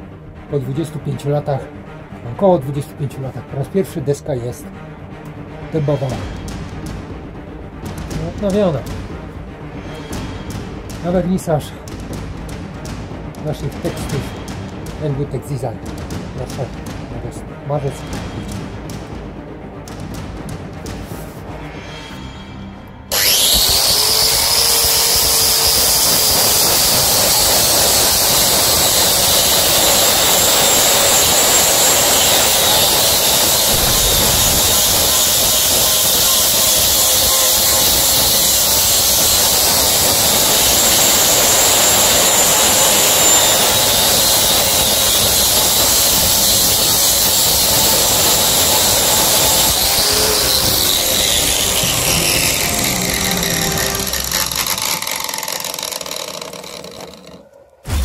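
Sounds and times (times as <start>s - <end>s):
angle grinder sanding wood: 23.1s - 57.4s.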